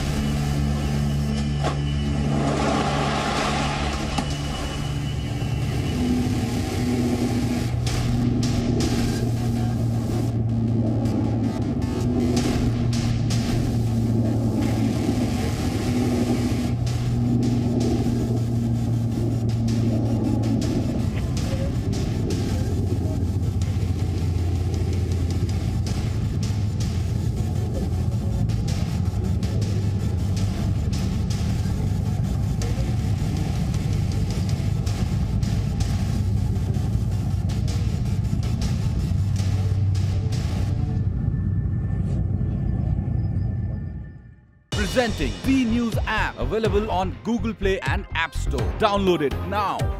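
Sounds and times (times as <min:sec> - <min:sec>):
turboprop engines droning: 0:00.0 - 0:49.9.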